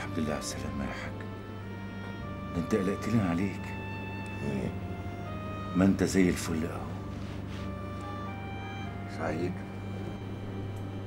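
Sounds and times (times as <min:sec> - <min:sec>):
man talking: 0:00.0 - 0:01.2, 0:02.4 - 0:04.8, 0:05.7 - 0:07.0, 0:09.1 - 0:09.7
soft sustained background music: 0:00.0 - 0:11.0.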